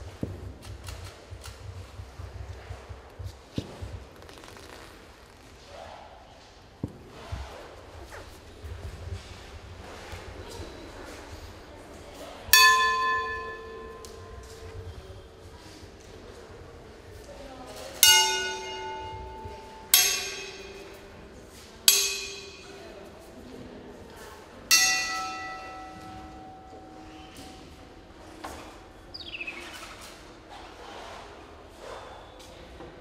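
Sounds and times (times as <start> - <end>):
metal object ringing like bell: 12.6 - 15.1, 18.0 - 21.1, 21.9 - 22.8, 24.7 - 27.7.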